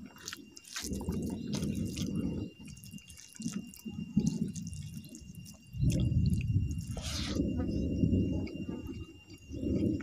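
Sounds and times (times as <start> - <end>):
wet chewing and mouth smacking: 0.0 - 7.8, 8.4 - 10.0.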